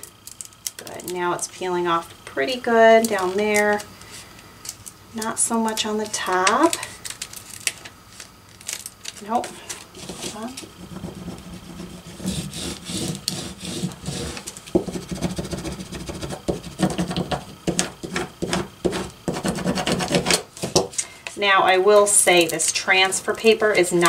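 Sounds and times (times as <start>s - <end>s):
transfer tape rubbing: 7.2s - 20.6s.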